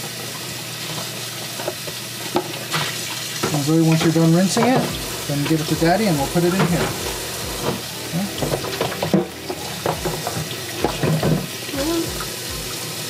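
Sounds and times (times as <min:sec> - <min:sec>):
dish brush scrubbing plastic: 0:00.0 - 0:13.0
faucet running into sink: 0:00.0 - 0:13.0.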